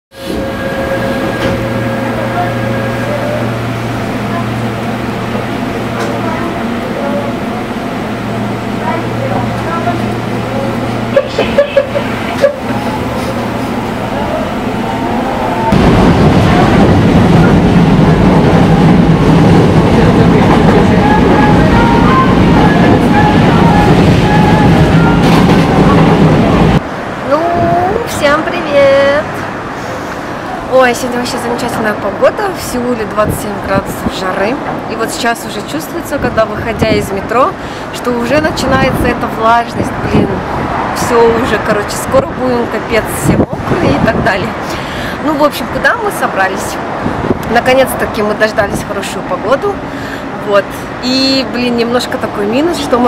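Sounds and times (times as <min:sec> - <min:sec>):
subway train running: 0:00.1 - 0:53.0
train rumbling on steel bridge: 0:00.1 - 0:53.0.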